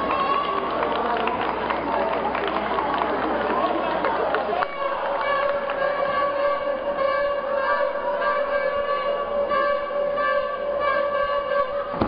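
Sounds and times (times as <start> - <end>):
noisy background: 0.0 - 12.0
steady horn-like tone: 4.6 - 12.0.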